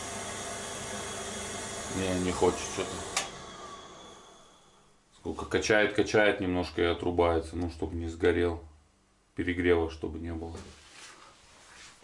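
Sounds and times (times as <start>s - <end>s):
fan motor and pump winding down: 0.0s - 4.9s
burner click: 3.1s - 3.4s.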